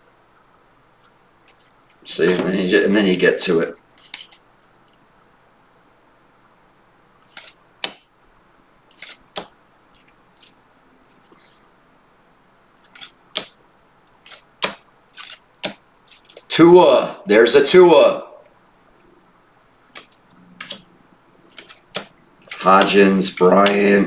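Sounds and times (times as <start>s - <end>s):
trading cards snapping: 4.0s - 4.4s, 7.2s - 8.1s, 8.9s - 11.3s, 12.8s - 13.6s, 14.2s - 16.5s, 19.8s - 20.9s, 21.5s - 23.9s.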